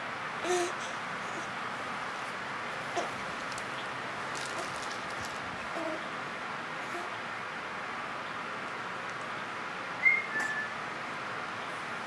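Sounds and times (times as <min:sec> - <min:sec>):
two-note whistle-like chirp: 0:10.0 - 0:10.8.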